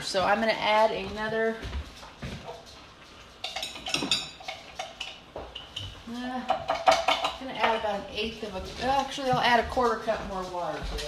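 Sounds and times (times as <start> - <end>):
kitchenware clinking and clattering: 0.0 - 11.0.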